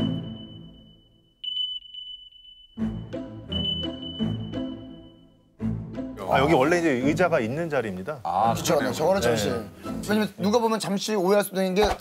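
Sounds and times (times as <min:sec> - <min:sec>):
background music: 0:00.0 - 0:01.4, 0:02.7 - 0:11.3
high steady beep tone: 0:00.0 - 0:05.6.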